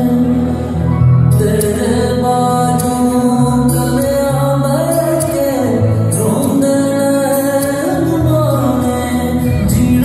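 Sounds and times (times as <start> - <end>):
amplified backing music: 0.0 - 10.0
man singing into microphone: 0.0 - 10.0.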